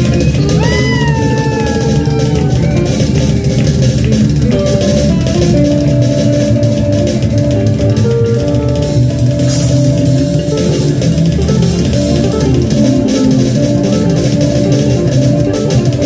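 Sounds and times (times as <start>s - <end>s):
electric guitars: 0.0s - 16.0s
steady drum beat: 0.0s - 16.0s.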